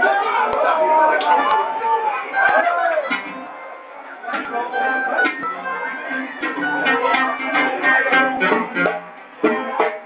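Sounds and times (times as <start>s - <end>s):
plucked string instrument strumming: 2.6s - 10.0s.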